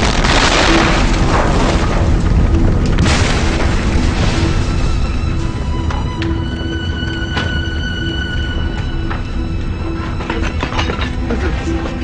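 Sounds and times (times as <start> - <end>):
explosion blasts and rumble: 0.0 - 8.2
faint music: 4.0 - 12.0.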